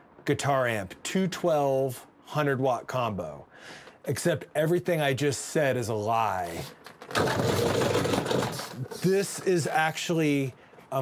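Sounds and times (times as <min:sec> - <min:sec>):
casters rattling on concrete: 0:06.8 - 0:09.8.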